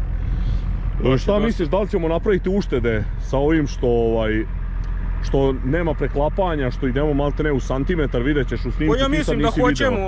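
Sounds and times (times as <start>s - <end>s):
low engine hum: 0.0s - 10.0s
man speaking: 1.0s - 4.4s, 5.2s - 10.0s.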